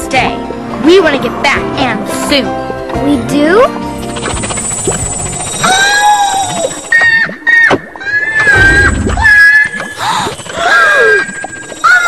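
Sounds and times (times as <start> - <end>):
background music: 0.0 - 6.9
cartoon character squealing: 5.6 - 12.0.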